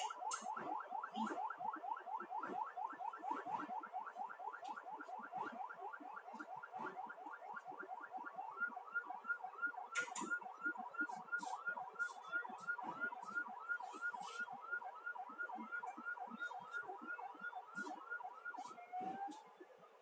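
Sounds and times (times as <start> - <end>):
emergency siren yelping: 0.0 - 19.7.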